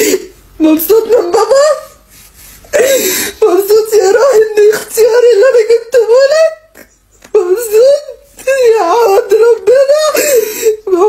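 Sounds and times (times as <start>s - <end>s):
woman crying and talking: 0.0s - 2.0s, 2.7s - 11.0s
sobbing gasp: 2.7s - 3.4s, 10.0s - 10.9s.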